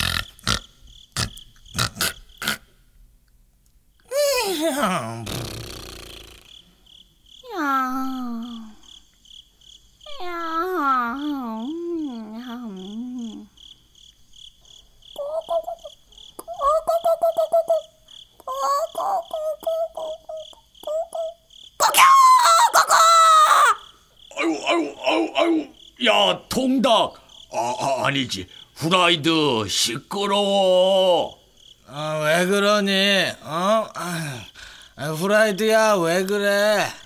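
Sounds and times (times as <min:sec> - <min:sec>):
person making sleeping sounds: 0:00.0 - 0:02.7, 0:04.1 - 0:06.7, 0:33.4 - 0:35.0
crickets chirping: 0:00.0 - 0:37.0
choppy vocal bursts: 0:04.6 - 0:06.5.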